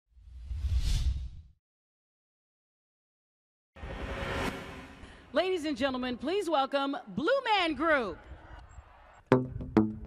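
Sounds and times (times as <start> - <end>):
whoosh: 3.8 - 5.4.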